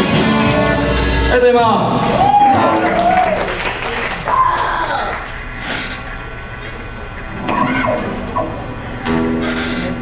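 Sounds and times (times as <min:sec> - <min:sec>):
amplified electric guitars ringing: 0:06.4 - 0:10.0.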